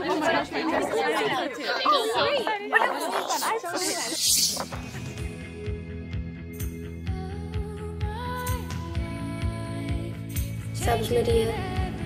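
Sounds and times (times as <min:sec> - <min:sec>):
young voices chattering: 0:00.0 - 0:05.2.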